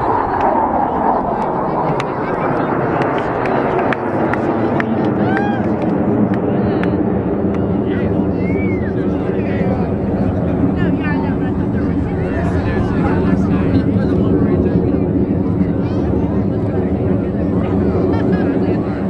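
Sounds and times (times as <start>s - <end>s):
jet engines roaring overhead: 0.0s - 19.0s.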